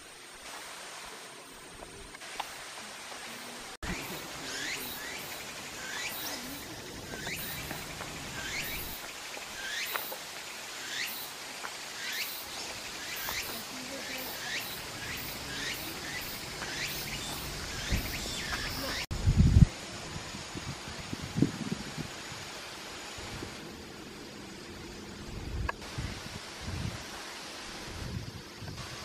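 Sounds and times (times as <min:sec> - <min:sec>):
steady high hiss: 0:00.0 - 0:29.0.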